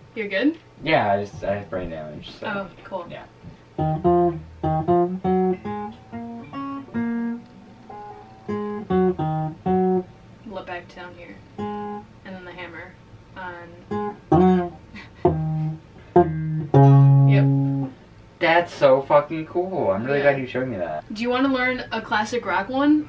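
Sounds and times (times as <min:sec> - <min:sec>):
guitar riff picked note by note: 0:03.8 - 0:10.3, 0:11.6 - 0:12.0, 0:13.9 - 0:18.0.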